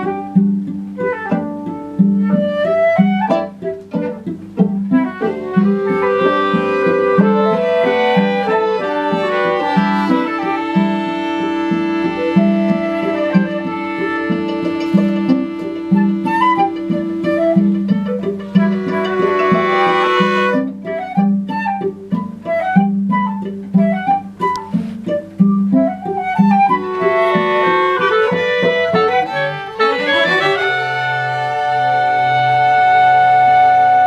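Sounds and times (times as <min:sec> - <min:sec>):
strings and flute ensemble: 0:00.0 - 0:34.0.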